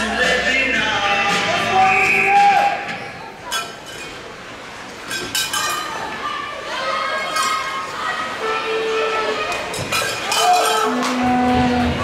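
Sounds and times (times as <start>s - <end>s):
ice rink ambience: 0.0s - 12.0s.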